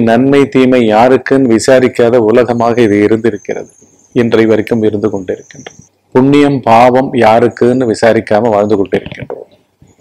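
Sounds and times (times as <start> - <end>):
man speaking: 0.0 - 9.5.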